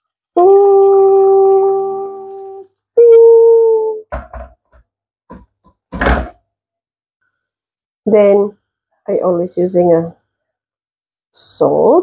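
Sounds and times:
voice holding long notes: 0.4s - 4.0s.

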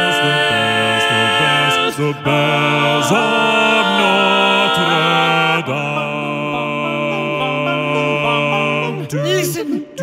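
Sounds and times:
male quartet singing a cappella: 0.0s - 10.0s.

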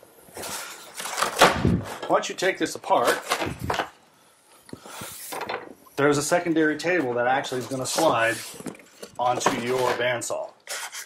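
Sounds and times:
cardboard rubbing and scraping: 7.5s - 11.0s.

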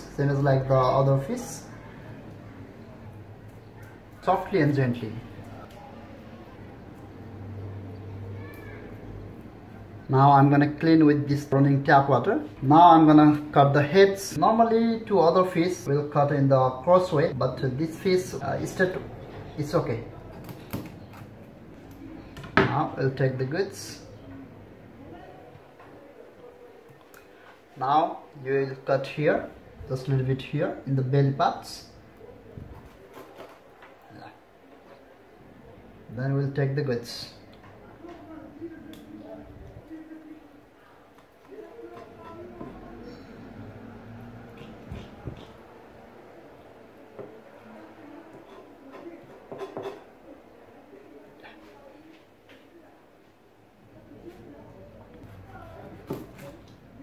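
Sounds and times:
knife scraping cutting board: 32.9s - 33.7s.

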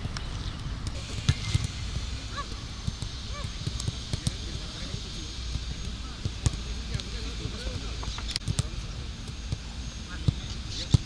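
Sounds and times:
footballs kicked on grass: 0.9s - 11.0s.

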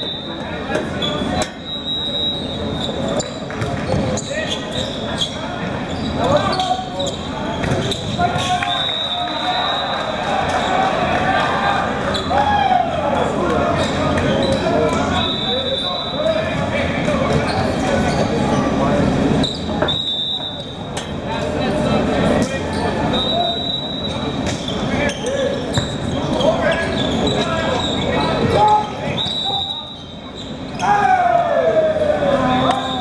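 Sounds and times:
players and spectators shouting: 4.4s - 18.2s, 30.7s - 33.0s.

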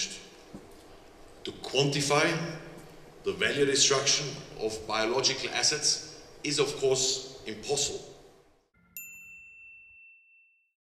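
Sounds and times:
bright ringing ding: 8.8s - 10.8s.

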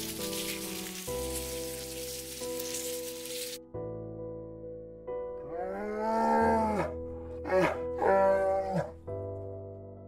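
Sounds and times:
background music of held notes: 0.0s - 10.0s.

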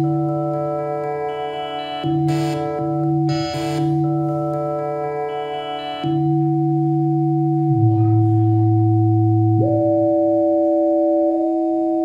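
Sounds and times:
synthesizer drone tones: 0.0s - 11.6s.

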